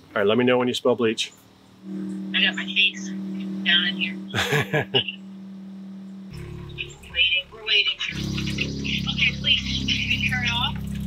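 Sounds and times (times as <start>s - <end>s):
water pump humming: 1.8s - 11.0s.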